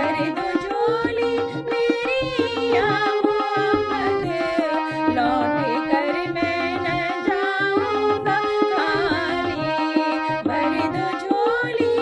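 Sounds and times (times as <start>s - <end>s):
woman singing: 0.0s - 12.0s.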